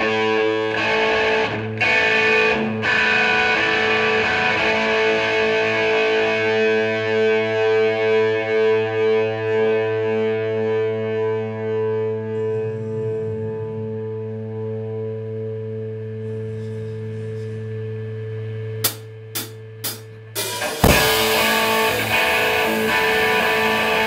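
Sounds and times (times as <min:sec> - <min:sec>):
distorted electric guitar chord: 0:00.0 - 0:12.6, 0:18.6 - 0:24.0
amplifier hum: 0:13.4 - 0:24.0.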